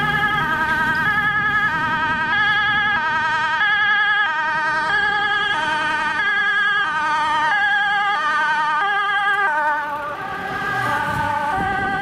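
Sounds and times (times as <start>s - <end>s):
two-tone fire engine siren: 0.0s - 12.0s.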